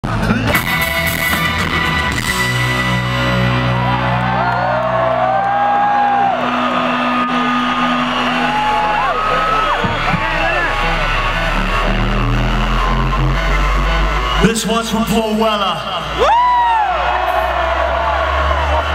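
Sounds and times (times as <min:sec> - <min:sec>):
rock band sustained chords: 0:00.0 - 0:18.9
crowd whooping and cheering: 0:00.9 - 0:18.9.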